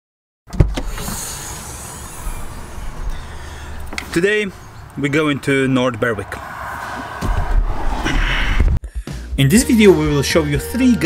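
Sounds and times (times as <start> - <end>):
car low rumble with hiss: 0.8 - 8.8.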